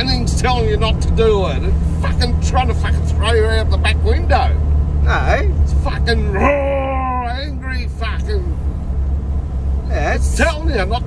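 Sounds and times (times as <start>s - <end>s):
car engine droning: 0.0s - 11.0s
man exclaiming: 5.1s - 8.6s.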